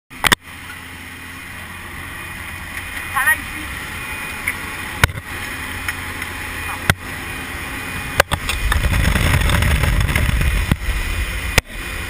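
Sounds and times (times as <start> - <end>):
aircraft engine drone in cabin: 0.1 - 12.0.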